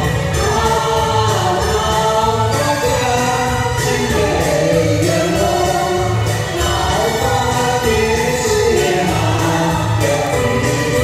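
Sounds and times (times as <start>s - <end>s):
duet singing into microphones: 0.0s - 11.0s
recorded backing music: 0.0s - 11.0s.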